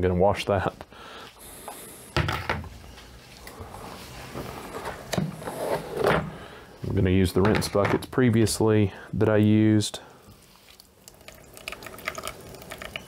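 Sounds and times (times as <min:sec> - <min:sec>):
plastic tubs knocking and clunking: 0:06.0 - 0:08.3.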